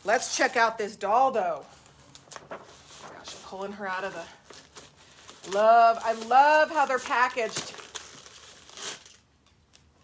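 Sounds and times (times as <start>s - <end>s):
doll packaging rustling: 0.0s - 10.0s.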